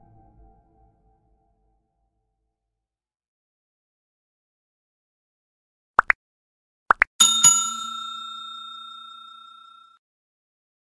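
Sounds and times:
bell ringing: 7.2 - 10.0.

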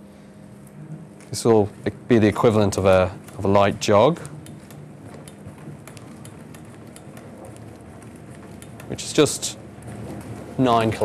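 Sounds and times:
treadmill motor humming: 0.0 - 11.0
footfalls on treadmill belt: 2.3 - 11.0.

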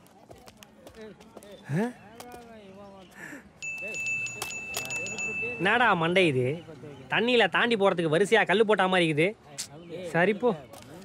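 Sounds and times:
high ringing chime tone: 3.6 - 6.3.

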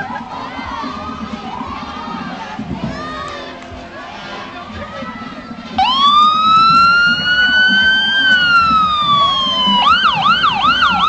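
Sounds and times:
children shouting and yelling: 0.0 - 11.0
crowd cheering: 0.0 - 11.0.

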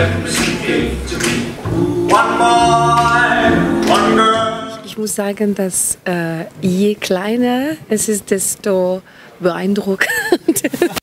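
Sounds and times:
plucked double bass: 0.0 - 4.8
men's vocal group singing in harmony: 0.0 - 4.9.

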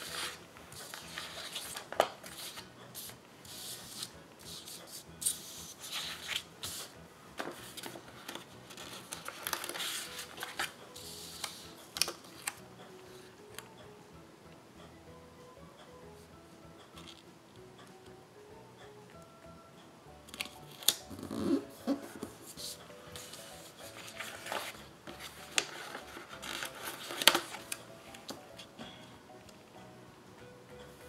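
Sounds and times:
paper rustling and sliding: 0.0 - 12.6, 21.8 - 28.7.

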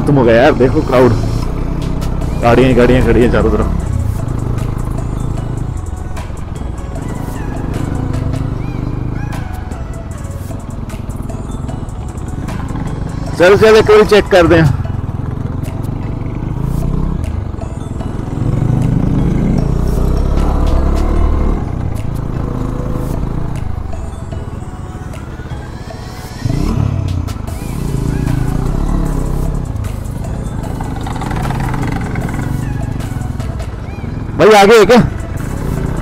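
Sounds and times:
motorcycle engines running: 0.0 - 36.0.

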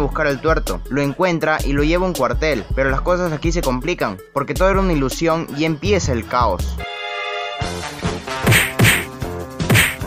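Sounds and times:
dramatic music: 6.8 - 10.0
hard fight whacks: 8.4 - 10.0.

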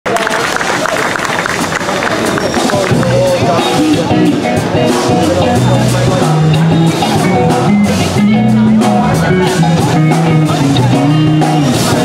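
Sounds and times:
crowd applause: 0.0 - 4.1
rock band guitars playing: 1.5 - 12.0
deep bass note: 2.9 - 12.0.

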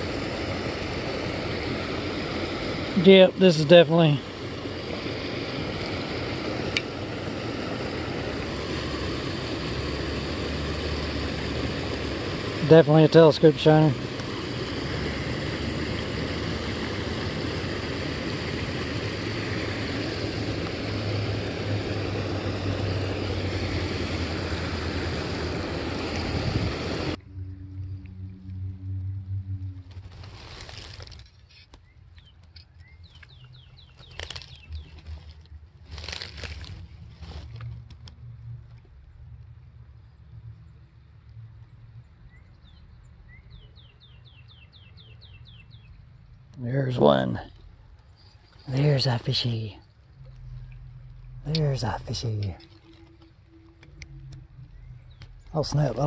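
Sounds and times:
water rushing from small waterfall: 0.0 - 27.2
rustling and handling noises: 29.8 - 32.7, 33.9 - 38.1.

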